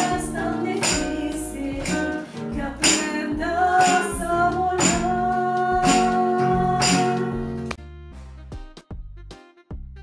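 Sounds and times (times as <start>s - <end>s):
tambourine hits: 0.0s - 6.2s, 6.8s - 7.6s
woman singing: 0.0s - 7.6s
classical guitar: 0.0s - 7.8s.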